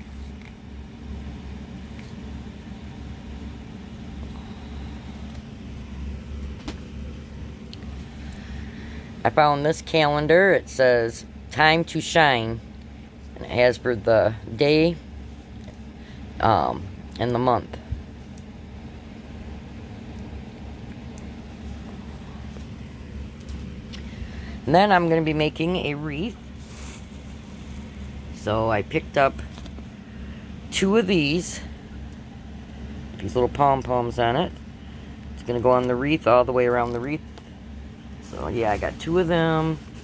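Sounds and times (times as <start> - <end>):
low mechanical hum: 0.0 - 40.0
low rumble background noise: 0.0 - 40.0.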